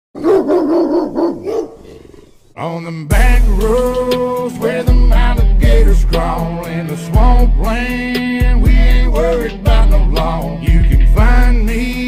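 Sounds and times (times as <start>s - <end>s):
dog barking: 0.2s - 2.2s.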